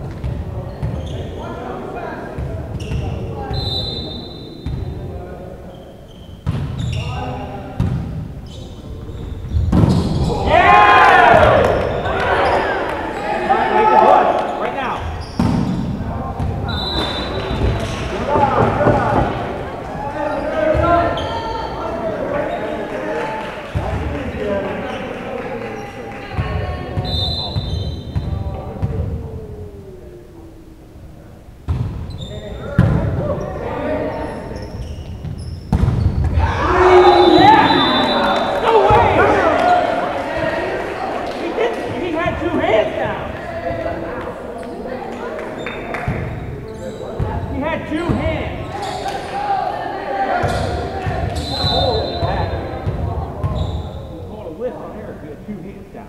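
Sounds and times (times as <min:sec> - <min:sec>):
voices of players and onlookers: 0:00.0 - 0:56.0
people calling out in a gym: 0:02.8 - 0:05.0, 0:10.0 - 0:15.4, 0:16.0 - 0:23.3, 0:24.5 - 0:31.2, 0:36.3 - 0:47.2, 0:47.8 - 0:54.4
referee's whistle blast: 0:03.5 - 0:04.7, 0:16.7 - 0:17.6, 0:36.7 - 0:38.6, 0:51.4 - 0:52.5.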